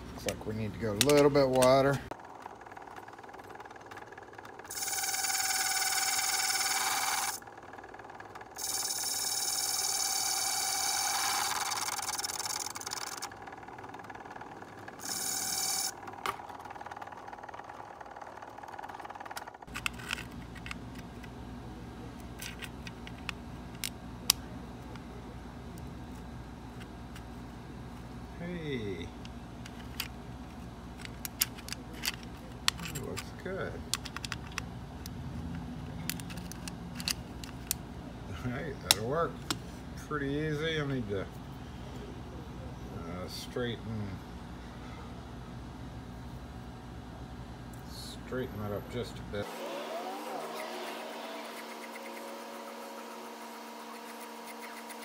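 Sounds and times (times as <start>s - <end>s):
machine humming: 0.0s - 38.8s, 49.4s - 55.0s
cutting wheel grinding metal: 49.4s - 55.0s.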